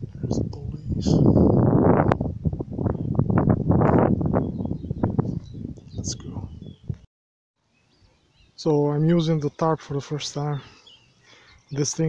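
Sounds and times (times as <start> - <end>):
wind buffeting microphone: 0.0 - 7.1.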